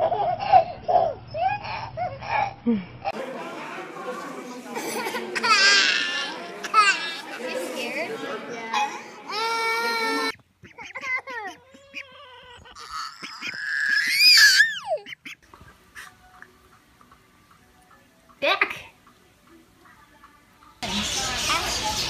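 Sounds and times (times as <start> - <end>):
toddler high calls: 11.0 - 15.0
toddler squealing: 11.0 - 15.0.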